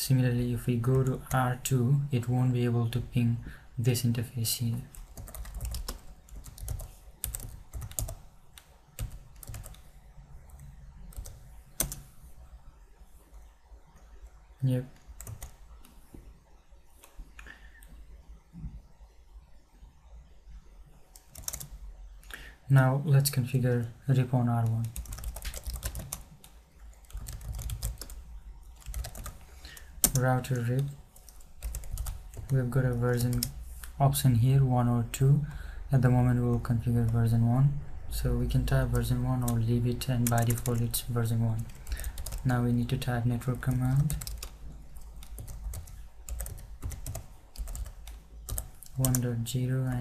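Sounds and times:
typing on computer keyboard: 4.9 - 8.2, 9.0 - 9.8, 11.1 - 12.0, 15.2 - 15.6, 21.2 - 21.7, 24.6 - 26.3, 26.9 - 28.2, 28.8 - 30.2, 30.8 - 32.6, 41.6 - 42.5, 43.6 - 49.2.

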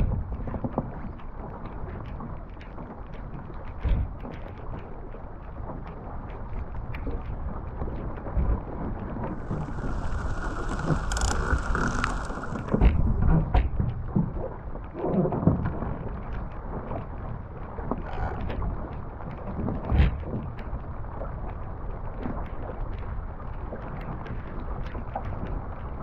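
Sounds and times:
water rushing along hull: 0.0 - 26.0
wind buffeting microphone: 6.7 - 21.5
hissing: 9.4 - 12.9.

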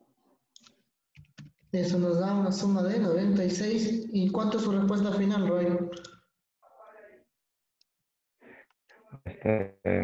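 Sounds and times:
faint distant voice: 9.2 - 10.0.

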